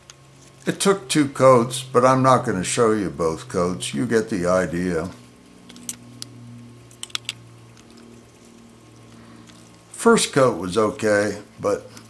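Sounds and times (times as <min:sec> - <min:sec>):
faint low hum: 0:00.3 - 0:12.0.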